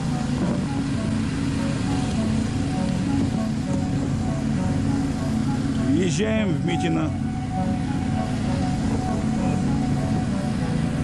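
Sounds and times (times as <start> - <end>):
vehicle engine droning: 0.0 - 11.0.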